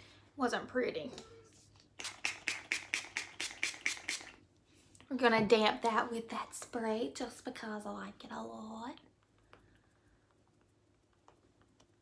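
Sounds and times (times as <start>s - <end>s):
spray bottle misting hisses: 2.0s - 4.4s.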